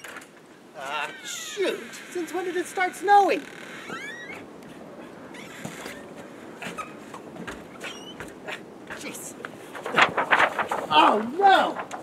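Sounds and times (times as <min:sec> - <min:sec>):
faint outdoor hush: 0:00.0 - 0:12.0.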